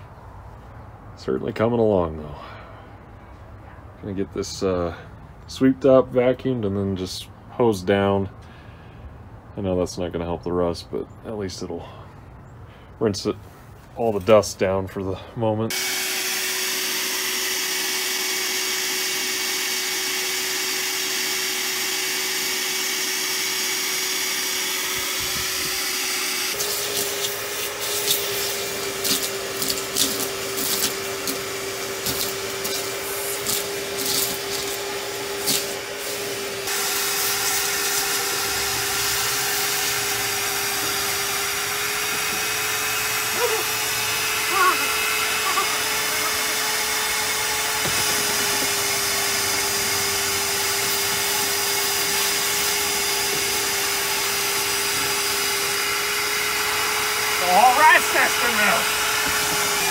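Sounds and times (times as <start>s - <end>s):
shop vacuum motor hum: 15.7s - 59.9s
debris rattling up vacuum hose: 26.6s - 36.5s, 47.7s - 50.0s.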